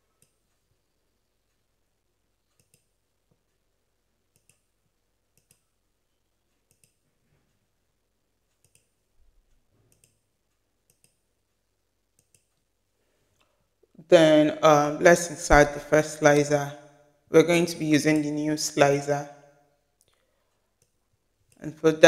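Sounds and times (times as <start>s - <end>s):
computer mouse clicks: 0.0s - 0.7s, 2.4s - 3.6s, 4.2s - 5.8s, 6.4s - 7.1s, 8.5s - 9.0s, 9.7s - 11.4s, 12.1s - 12.7s, 20.0s - 21.7s.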